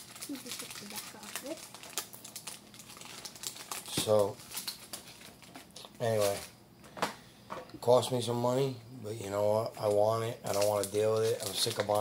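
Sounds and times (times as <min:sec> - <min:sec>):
foil wrapper crinkling: 0:00.0 - 0:06.6, 0:09.8 - 0:12.0.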